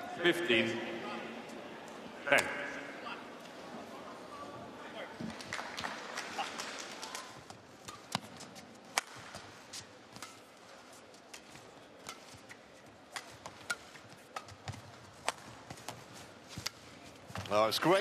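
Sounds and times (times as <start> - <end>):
racket hitting shuttlecock: 7.5 - 17.5.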